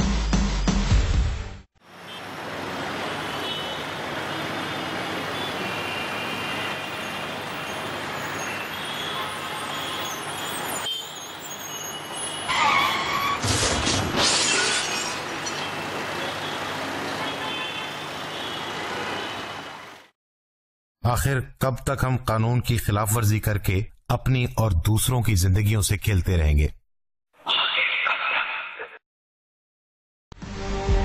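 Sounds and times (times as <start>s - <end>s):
road traffic noise: 1.8s - 20.2s
tyre squeal: 7.7s - 13.4s
car crash impact: 13.3s - 15.6s.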